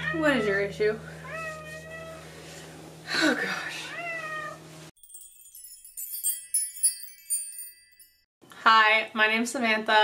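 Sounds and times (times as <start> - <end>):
cat meowing: 3.9 - 4.6.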